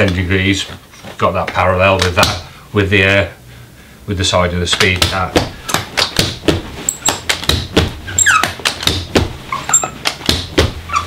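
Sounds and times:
carpet knee kicker knocks: 4.8s - 10.8s.

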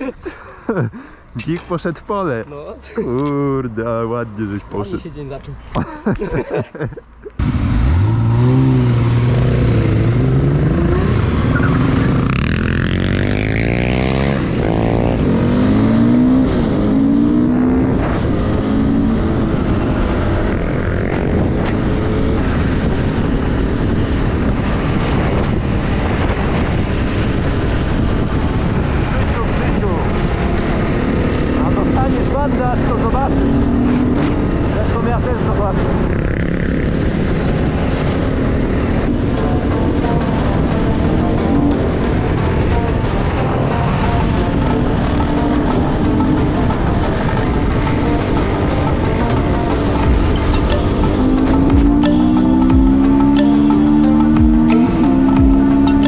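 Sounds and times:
other motorcycle and quad engines: 7.3s - 56.0s
dirt bike engine revving: 7.4s - 22.7s, 36.0s - 56.0s
wind on microphone: 8.2s - 31.8s.

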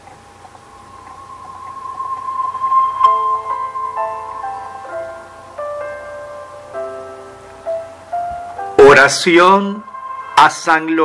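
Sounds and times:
held musical tone: 0.0s - 11.0s.

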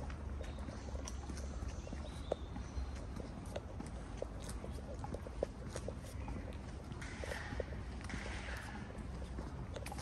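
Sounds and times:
footsteps on woodland path: 0.0s - 10.0s.

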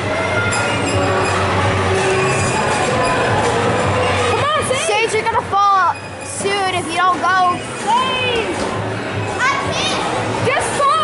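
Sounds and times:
play hall hubbub: 0.0s - 11.0s.

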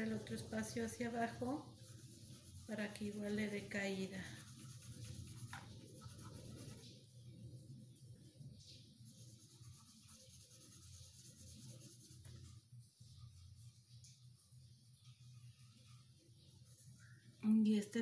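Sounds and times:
pencil scratching on paper: 0.0s - 7.0s, 9.0s - 12.3s.

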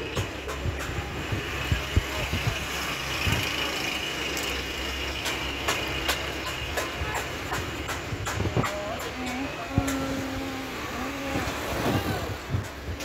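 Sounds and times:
street noise: 0.0s - 13.0s
vehicle engine humming: 0.0s - 13.0s.

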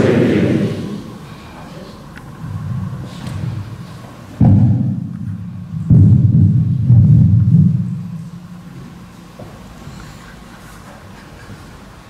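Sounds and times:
loud low thuds: 0.0s - 1.2s, 4.4s - 8.7s
deep rumble: 0.0s - 1.4s.

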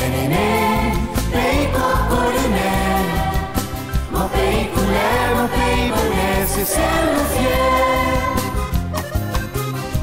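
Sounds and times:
children's choir singing: 0.0s - 8.8s
instrumental backing with bass: 0.0s - 10.0s.

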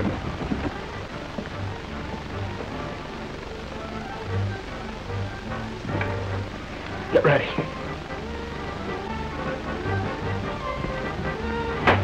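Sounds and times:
film soundtrack hiss: 0.0s - 12.0s
slow film-score music: 0.0s - 12.0s.

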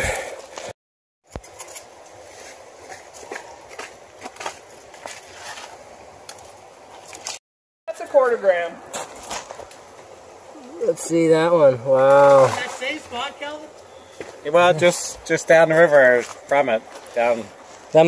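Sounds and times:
creek water running: 1.4s - 18.0s.

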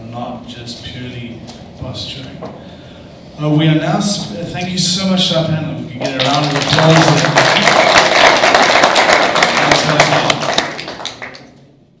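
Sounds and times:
audience clapping: 6.0s - 11.8s.

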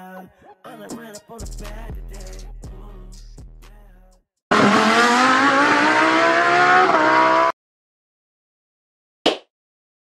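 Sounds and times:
car engine revving: 4.5s - 7.5s.

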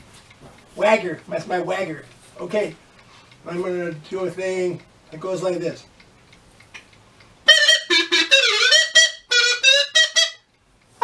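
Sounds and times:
reedy wind instrument tune: 7.4s - 10.5s.

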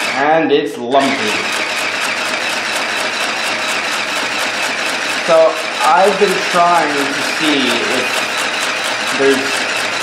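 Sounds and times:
sewing machine stitching: 0.0s - 10.0s.

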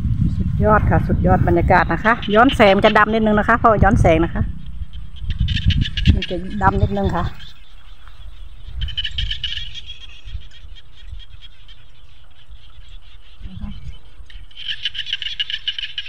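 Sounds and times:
frogs trilling in chorus: 1.6s - 16.0s.

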